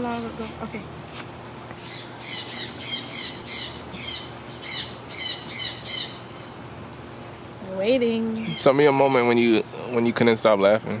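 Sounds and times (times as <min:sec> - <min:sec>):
bird calling: 0:01.8 - 0:06.6, 0:08.3 - 0:10.2.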